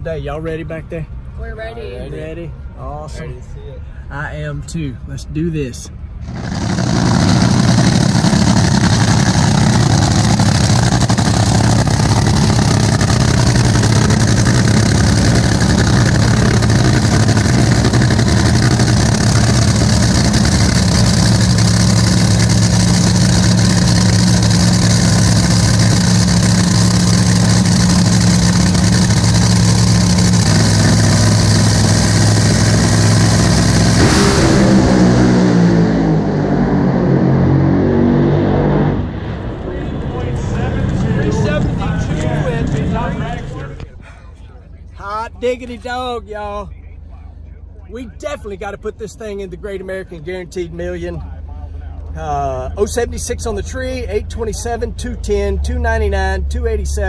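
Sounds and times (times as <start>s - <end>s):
dragster engine roaring: 5.9s - 44.2s.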